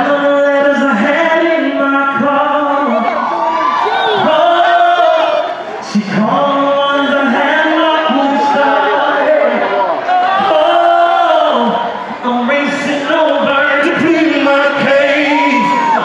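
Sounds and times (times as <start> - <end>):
crowd voices: 0.0 - 16.0
man singing into a microphone: 0.0 - 16.0.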